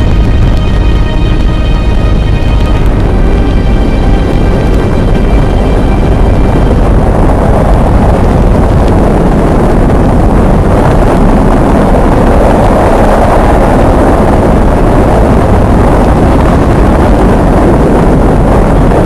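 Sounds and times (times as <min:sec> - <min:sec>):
rocket engines rumbling: 0:00.0 - 0:19.0.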